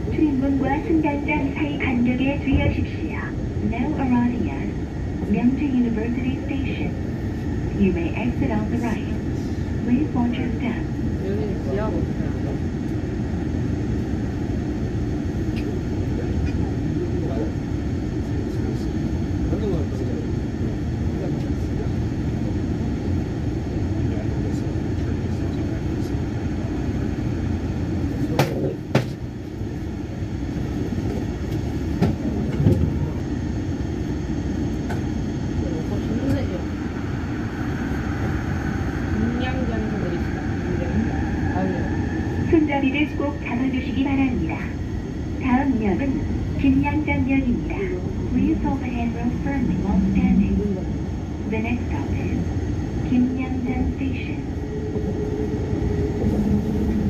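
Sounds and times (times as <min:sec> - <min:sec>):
train wheels rumbling on rails: 0:34.8 - 0:57.0
rising whine: 0:48.8 - 0:57.0.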